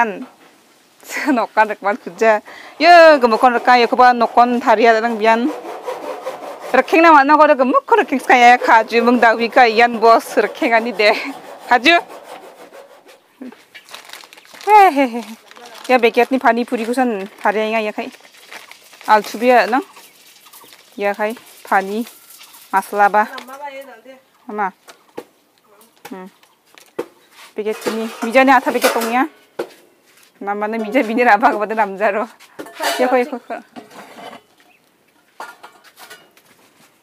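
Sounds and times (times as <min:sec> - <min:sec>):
woman speaking: 0:01.1 - 0:05.5, 0:06.8 - 0:12.0, 0:14.6 - 0:18.1, 0:19.1 - 0:19.9, 0:21.0 - 0:22.1, 0:22.7 - 0:24.8, 0:25.7 - 0:26.3, 0:27.6 - 0:29.3, 0:30.4 - 0:33.7
repeated scraping: 0:01.6 - 0:23.9, 0:26.1 - 0:34.8
person's voice: 0:14.7 - 0:18.1.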